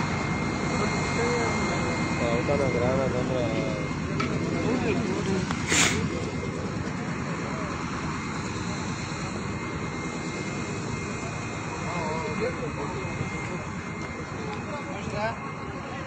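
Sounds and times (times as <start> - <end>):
faint voices: 0.0 - 16.0
generator engine drone: 0.0 - 16.0.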